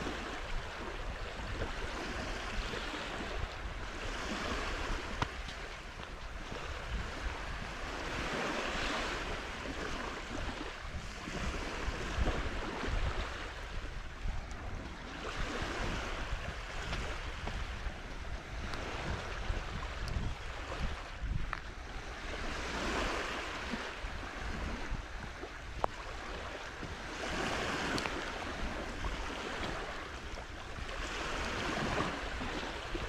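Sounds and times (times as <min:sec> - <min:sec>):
small waves washing on sand: 0:00.0 - 0:33.0
wind rumble on microphone: 0:00.0 - 0:33.0.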